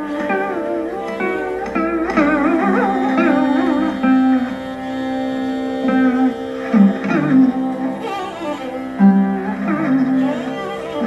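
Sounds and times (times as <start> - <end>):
slide veena melody: 0.0 - 11.0
violin: 0.0 - 11.0.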